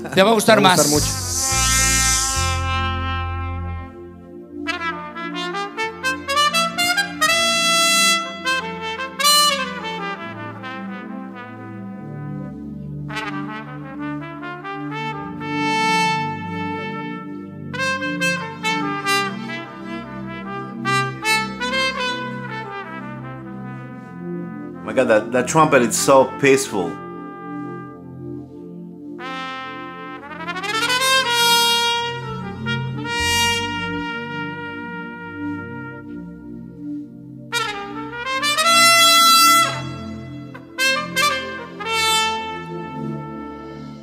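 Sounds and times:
trumpet playing slow melody: 0.6s - 24.9s, 26.2s - 44.0s
soft band accompaniment: 32.4s - 36.2s.

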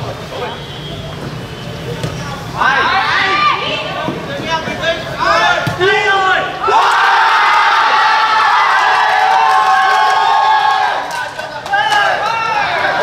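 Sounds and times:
people shouting: 2.6s - 4.0s, 5.2s - 11.1s
crowd cheering: 5.2s - 13.0s.

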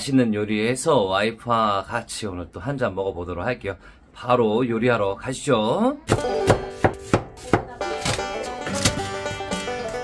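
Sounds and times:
knife chopping on plastic board: 6.1s - 8.2s
background music: 6.1s - 10.0s.

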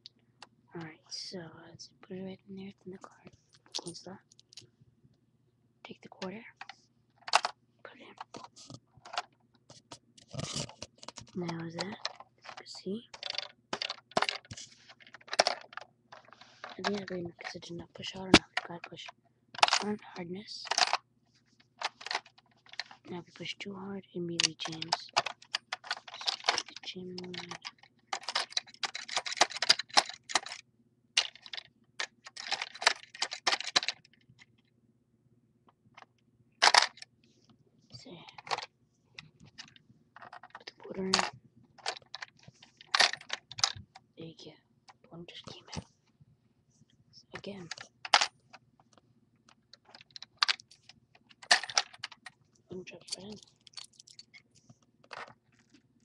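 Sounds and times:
plastic parts clicking and rattling: 6.2s - 21.0s, 21.6s - 23.6s, 24.3s - 30.6s, 31.2s - 34.6s, 35.9s - 37.1s, 38.0s - 44.1s, 44.9s - 45.9s, 47.3s - 55.8s
plastic gumball machine clicking: 24.4s - 30.6s.

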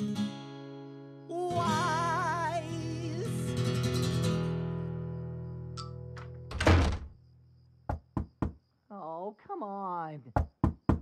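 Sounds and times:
acoustic guitar chord: 0.0s - 6.1s
door slamming shut: 6.2s - 7.2s
knock on door: 7.9s - 8.6s, 10.3s - 11.0s.

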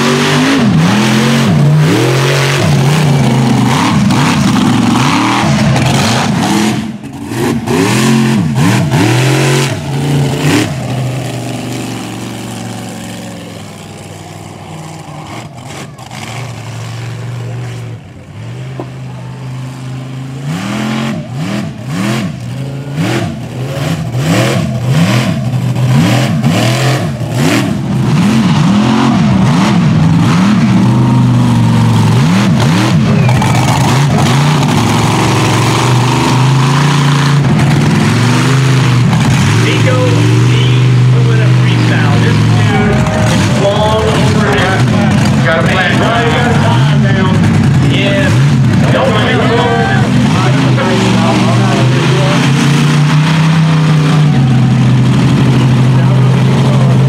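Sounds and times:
truck engine revving: 0.0s - 57.0s.

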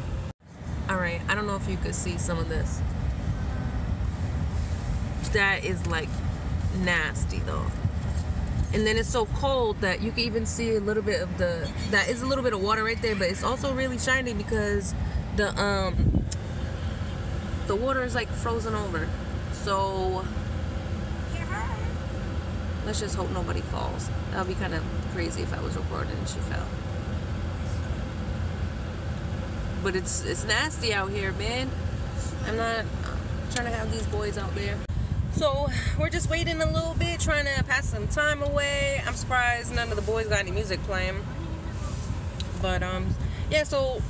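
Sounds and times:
car engine running: 0.0s - 44.0s.

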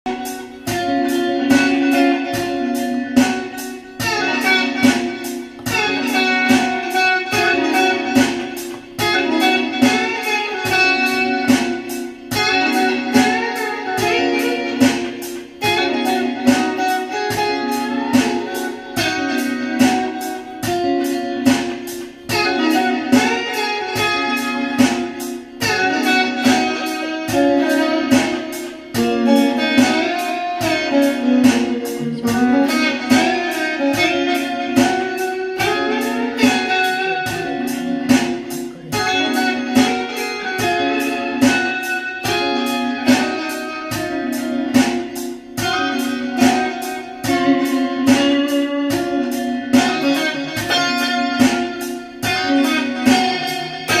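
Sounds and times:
electric guitar picked notes: 0.0s - 54.0s.

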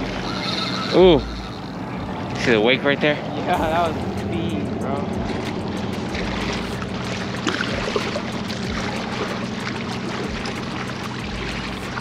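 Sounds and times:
low steady hum: 0.0s - 12.0s
waves lapping against rocks: 0.0s - 12.0s
wind: 0.0s - 12.0s.

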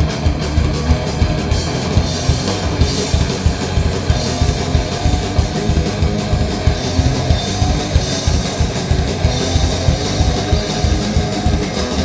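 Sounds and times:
bass guitar: 0.0s - 12.0s
distorted electric guitars: 0.0s - 12.0s
fast drum beat: 0.0s - 12.0s.

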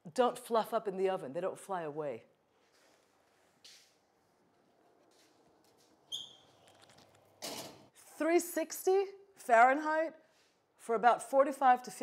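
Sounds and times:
brief high squeak: 6.1s - 6.6s.

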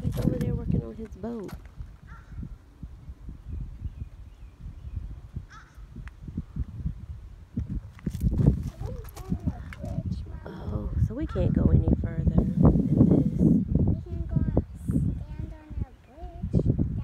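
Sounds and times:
wind rumble on microphone: 0.0s - 17.0s
faint voices talking: 8.6s - 17.0s.

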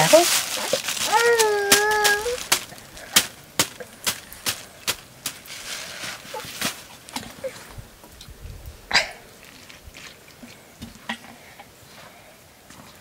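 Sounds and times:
plastic bag crinkling: 0.0s - 7.6s.

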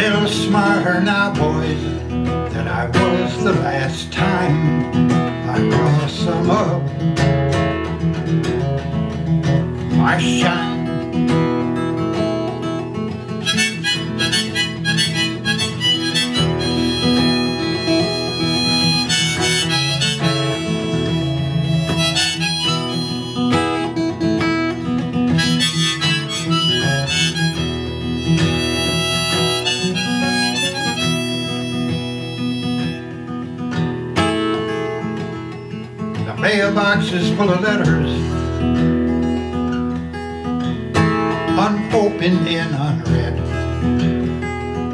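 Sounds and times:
strummed acoustic guitar: 0.0s - 44.9s
harmonica solo: 13.3s - 33.7s.

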